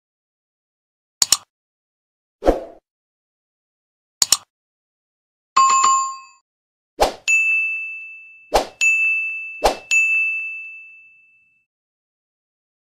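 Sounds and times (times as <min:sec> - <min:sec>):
bright ding: 0:07.3 - 0:11.6.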